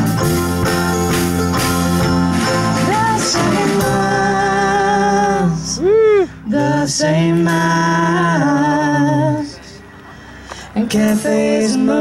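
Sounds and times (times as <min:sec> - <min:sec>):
drums keeping a beat: 0:00.0 - 0:05.1, 0:10.9 - 0:11.6
mandolin: 0:00.0 - 0:05.1
bass guitar: 0:00.0 - 0:12.0.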